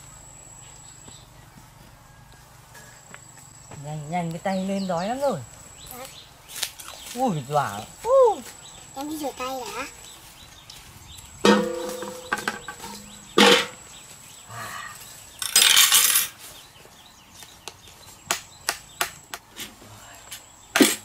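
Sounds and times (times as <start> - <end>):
steel basin clanging: 11.4 - 13.8.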